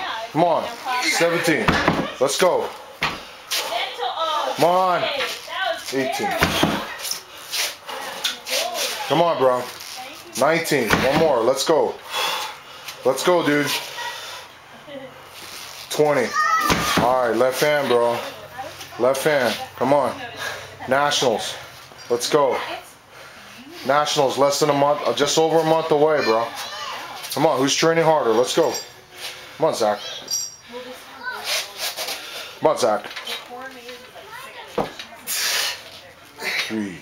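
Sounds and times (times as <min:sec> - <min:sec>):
short sharp breaths: 0:12.0 - 0:13.0, 0:13.7 - 0:14.6, 0:29.0 - 0:32.6, 0:35.2 - 0:36.9.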